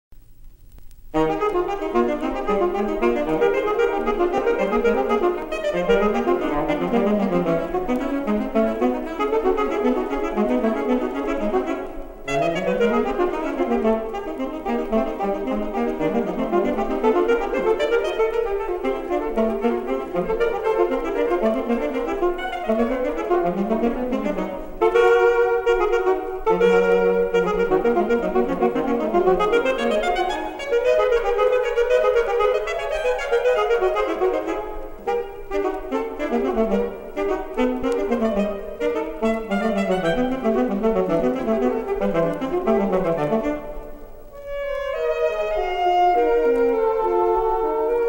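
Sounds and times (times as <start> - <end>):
alto saxophone duet: 1.2 - 48.0.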